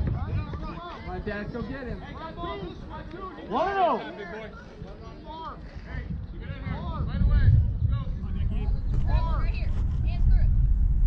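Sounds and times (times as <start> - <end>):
people shouting calls: 2.1 - 4.5
steady low rumble: 4.8 - 11.0.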